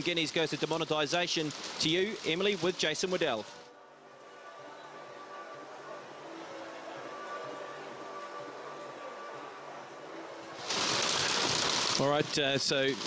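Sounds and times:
loud hissing static: 0:00.0 - 0:03.7, 0:10.4 - 0:13.0.

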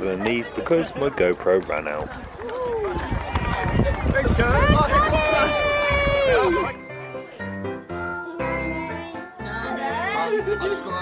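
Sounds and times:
crowd cheering and shouting: 0:02.1 - 0:07.0.

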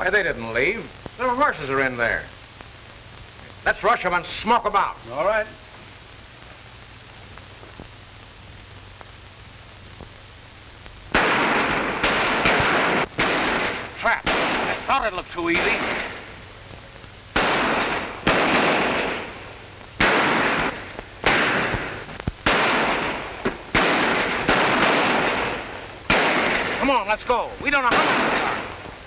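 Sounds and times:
gunshots echoing: 0:11.1 - 0:16.4, 0:17.4 - 0:28.9.

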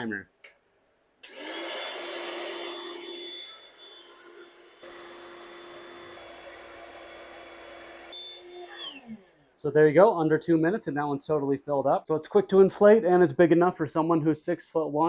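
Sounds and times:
electric air pump humming: 0:01.2 - 0:09.3
pump winding down: 0:01.2 - 0:09.4.

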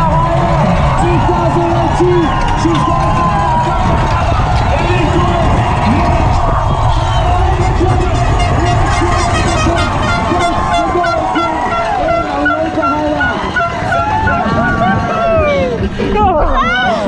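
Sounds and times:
bike rolling noise: 0:00.0 - 0:17.0
spectators shouting and cheering: 0:00.0 - 0:17.0
wind: 0:00.0 - 0:17.0
horn tooting short blasts: 0:07.4 - 0:14.1.

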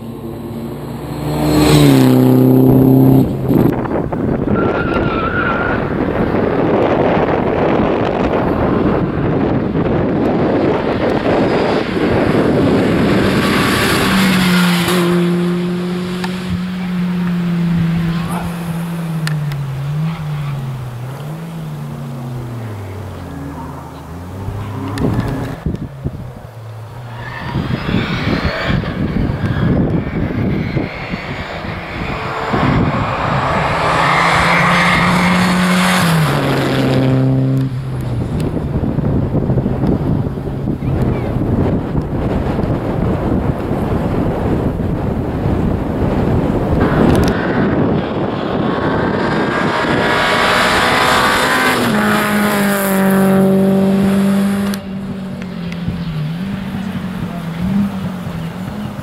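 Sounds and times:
engines downshifting: 0:00.0 - 0:59.0
rally cars passing at full throttle: 0:00.0 - 0:59.0.

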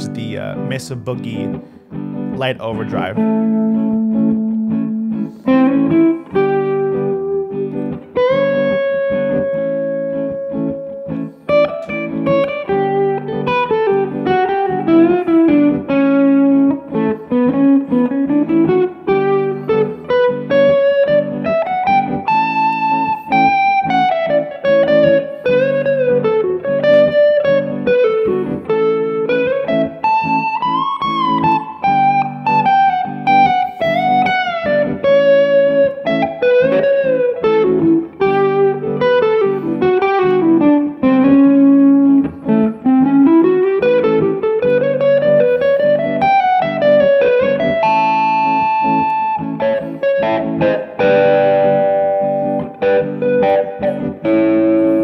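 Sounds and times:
chord backing: 0:00.0 - 0:55.0
overdriven electric guitar lead: 0:00.0 - 0:55.0.

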